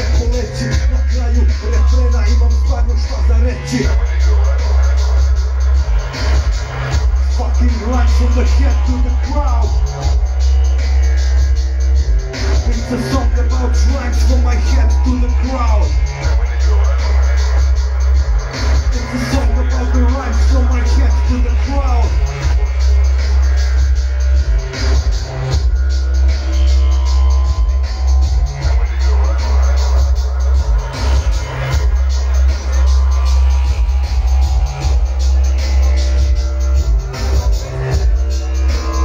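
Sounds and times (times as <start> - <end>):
electronic hip-hop backing track: 0.0 - 39.0
heavy sub-bass: 0.0 - 39.0
ticking hi-hat: 0.0 - 39.0.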